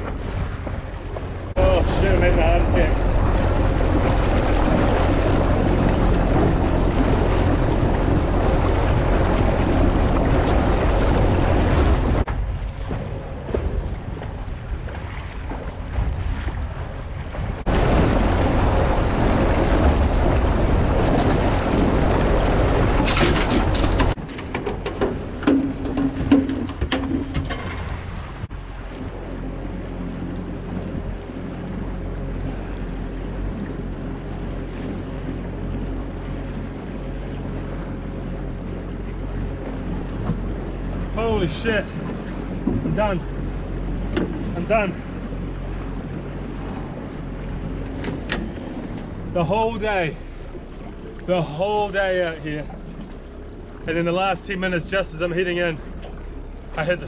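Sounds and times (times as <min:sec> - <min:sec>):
wind noise on microphone: 0:00.0 - 0:29.3
outboard motor running: 0:00.0 - 0:57.0
water rushing past hull: 0:00.0 - 0:57.0.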